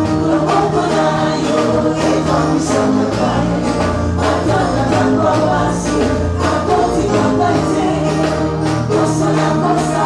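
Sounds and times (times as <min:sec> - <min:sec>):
band with drum kit: 0:00.0 - 0:10.0
women singing gospel: 0:00.0 - 0:10.0.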